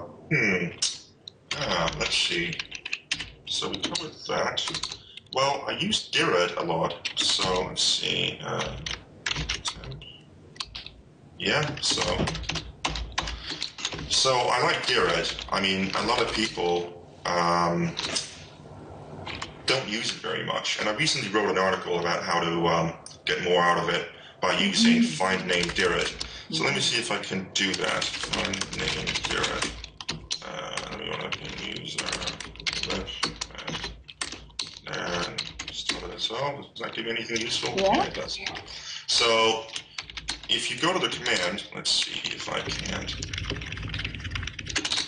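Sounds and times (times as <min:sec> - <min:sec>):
computer keyboard typing: 0:01.3 - 0:05.5, 0:06.8 - 0:16.8, 0:25.5 - 0:36.2, 0:37.0 - 0:45.0.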